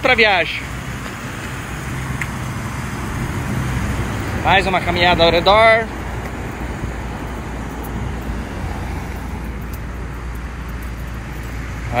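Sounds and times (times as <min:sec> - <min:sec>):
road traffic rumble and hiss: 0:00.0 - 0:12.0.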